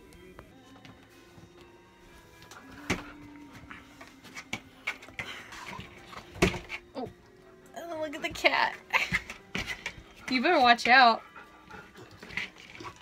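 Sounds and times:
quiet background music: 0.0s - 13.0s.

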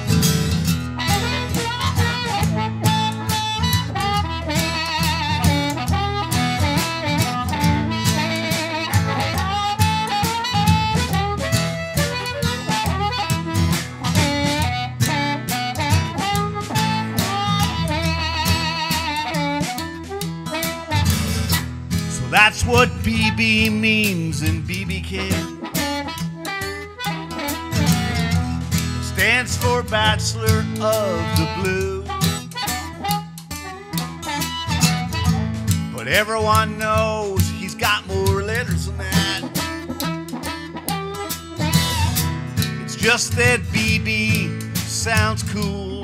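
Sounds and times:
blues harmonica solo: 0.0s - 46.0s
strummed acoustic guitar: 0.0s - 46.0s.

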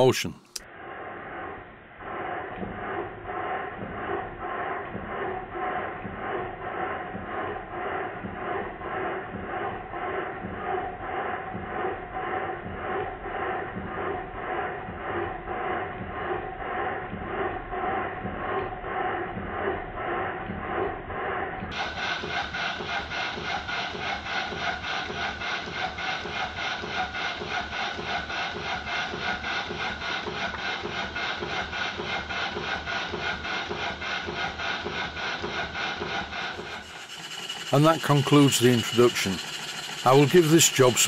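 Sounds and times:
steam engine running: 2.8s - 41.0s.

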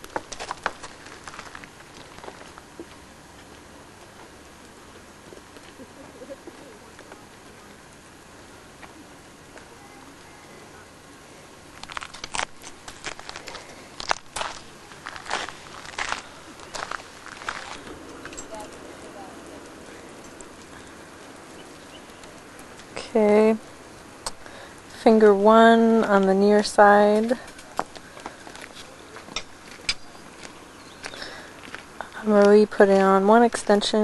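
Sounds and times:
crunchy footsteps: 0.0s - 10.7s, 11.5s - 34.0s
low steady hiss: 0.0s - 34.0s
light scuffs: 11.9s - 18.8s.

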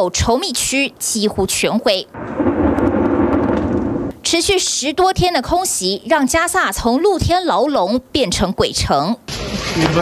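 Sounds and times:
distant explosion rumbling roar: 2.1s - 4.2s.

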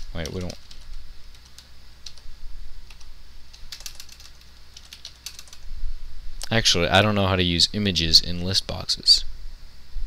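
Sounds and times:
typing on computer keyboard: 0.0s - 2.2s, 2.9s - 5.6s
faint low hum: 0.0s - 10.0s.

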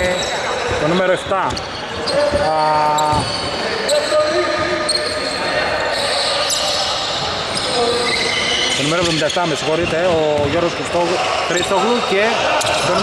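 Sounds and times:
players' voices echoing: 0.0s - 13.0s.

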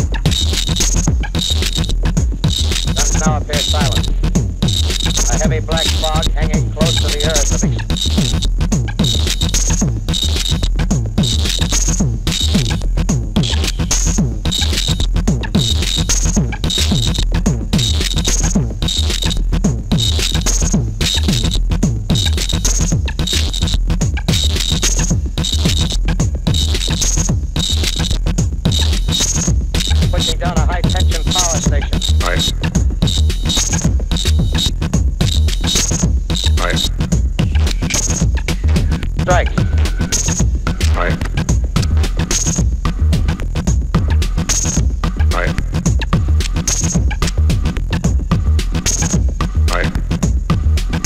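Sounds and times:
repeating high synthesizer tones: 0.0s - 43.4s
steady low synthesizer drone: 0.0s - 51.0s.

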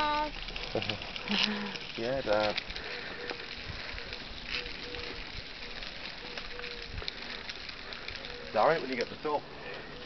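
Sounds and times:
footsteps on paved road: 0.0s - 10.0s.

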